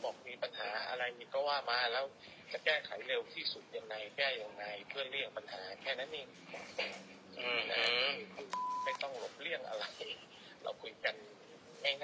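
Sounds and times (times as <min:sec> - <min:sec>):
faint steady hum: 0:00.0 - 0:12.0
man speaking: 0:00.0 - 0:12.0.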